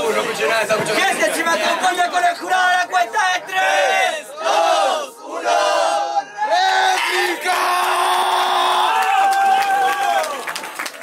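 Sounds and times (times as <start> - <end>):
crowd chanting and shouting: 0.0 - 8.9.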